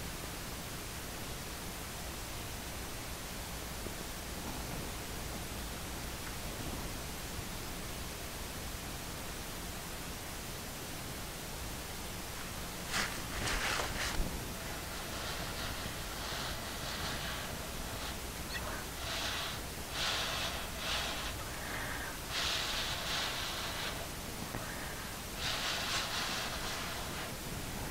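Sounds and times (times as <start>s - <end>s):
low background hiss: 0.0s - 27.9s
short soft airy noises: 12.4s - 27.9s.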